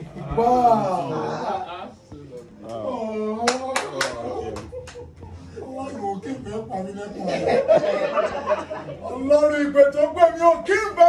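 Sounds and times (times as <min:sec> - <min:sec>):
hand claps: 0:03.4 - 0:05.1.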